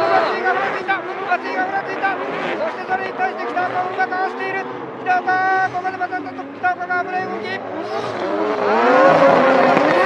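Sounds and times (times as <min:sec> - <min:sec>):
car engines revving hard: 0:00.0 - 0:10.0.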